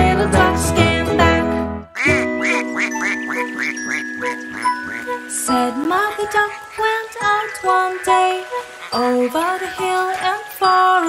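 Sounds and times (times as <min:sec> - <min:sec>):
cartoon duck quacking: 0:02.0 - 0:05.1.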